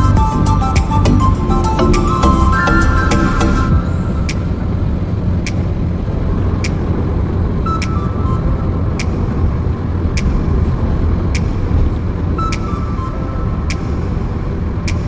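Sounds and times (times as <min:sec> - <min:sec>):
background music with light beat: 0:00.0 - 0:04.7, 0:07.6 - 0:15.0
car road and engine rumble: 0:00.0 - 0:15.0.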